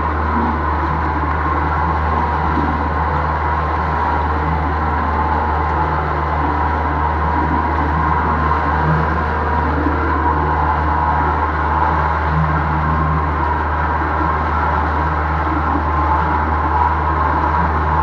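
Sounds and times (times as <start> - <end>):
boat wake churning: 0.0 - 18.0
outboard motor running: 0.0 - 18.0.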